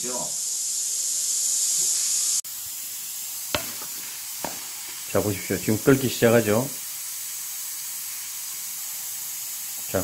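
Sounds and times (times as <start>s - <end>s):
steam hissing from vent: 0.0s - 10.0s.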